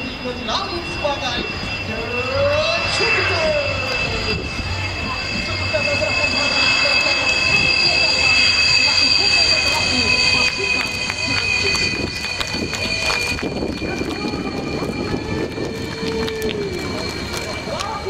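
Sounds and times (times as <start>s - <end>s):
jet engines whining: 0.0s - 18.0s.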